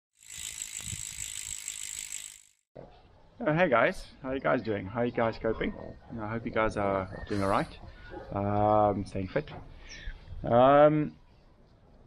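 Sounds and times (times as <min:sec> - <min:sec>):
bicycle freewheel ratchet clicking: 0:00.1 - 0:02.7.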